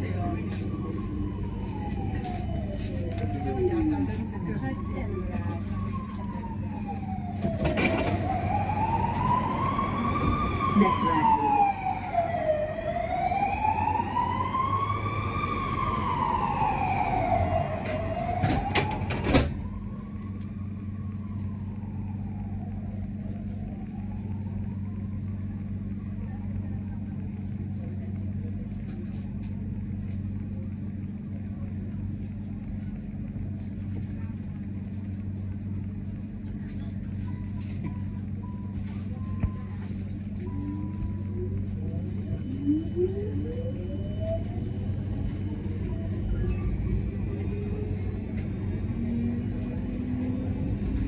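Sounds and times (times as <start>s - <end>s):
siren wailing: 0.0s - 25.8s, 40.4s - 48.2s
low tram hum: 0.0s - 51.0s.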